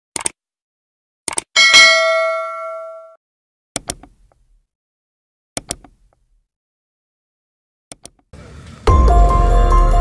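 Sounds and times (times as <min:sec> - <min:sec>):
bell ding: 0:01.6 - 0:03.2
mouse clicks: 0:03.8 - 0:04.2, 0:05.6 - 0:06.0, 0:07.9 - 0:08.2.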